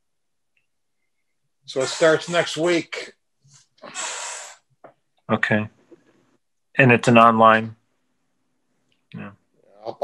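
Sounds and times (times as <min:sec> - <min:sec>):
person breathing out: 0:03.8 - 0:04.7.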